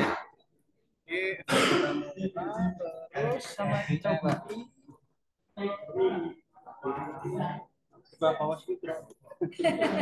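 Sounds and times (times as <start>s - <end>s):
person clearing throat: 1.4s - 2.2s.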